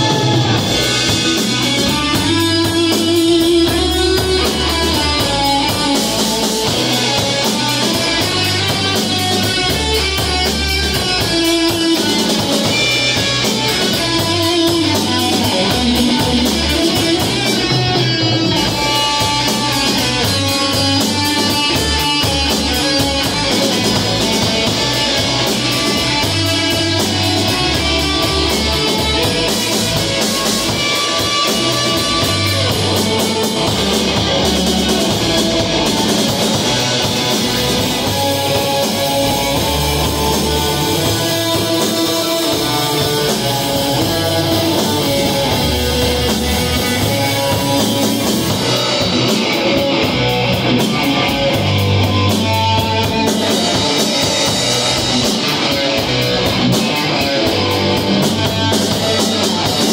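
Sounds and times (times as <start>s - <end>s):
rock band playing: 0.0s - 59.9s.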